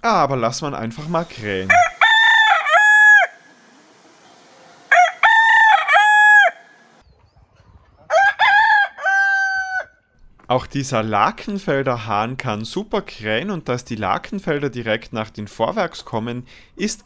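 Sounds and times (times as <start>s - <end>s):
rooster crowing: 1.7s - 7.0s, 8.1s - 10.0s.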